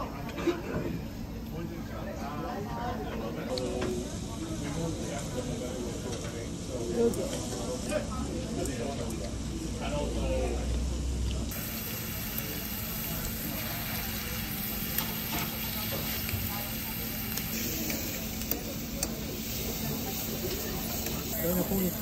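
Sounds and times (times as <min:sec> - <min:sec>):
beef sizzling in a pan: 0:11.5 - 0:22.0.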